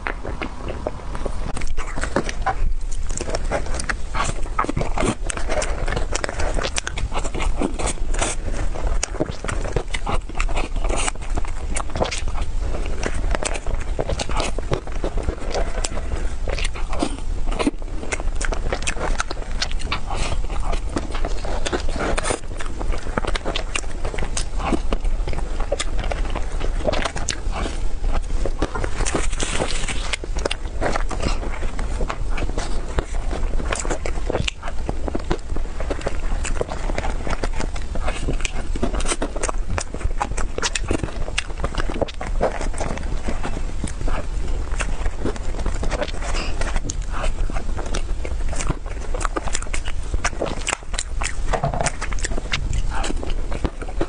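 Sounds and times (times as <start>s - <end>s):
wet mouth chewing sounds: 0.0s - 54.0s
plastic spoon scraping cake: 41.2s - 54.0s.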